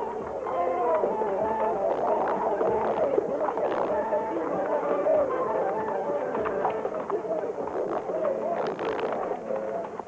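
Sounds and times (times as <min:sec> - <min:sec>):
background music: 0:00.0 - 0:07.4
crowd hubbub: 0:00.0 - 0:10.0.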